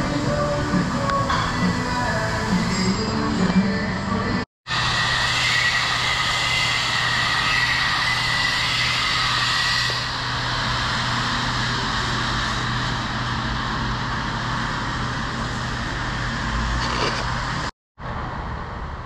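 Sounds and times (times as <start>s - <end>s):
mechanical drone with hum and hiss: 0.0s - 19.0s.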